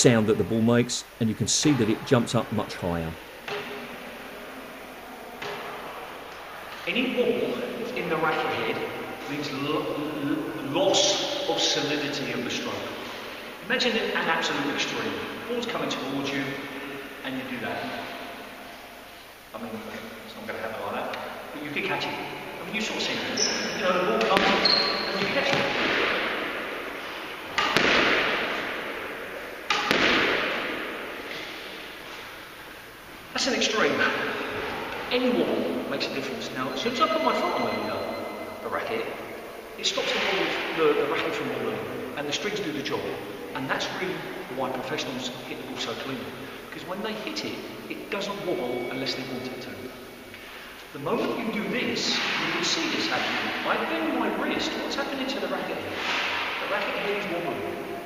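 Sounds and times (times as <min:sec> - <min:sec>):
squash ball smacks with echo: 0:24.2 - 0:24.6, 0:25.4 - 0:31.8
ball striking racket strings: 0:27.5 - 0:28.6, 0:29.7 - 0:30.7.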